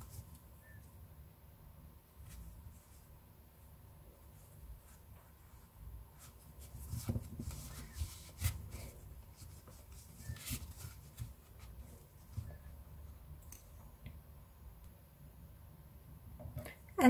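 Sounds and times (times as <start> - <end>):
yarn rubbing and rustling: 4.2 - 12.7.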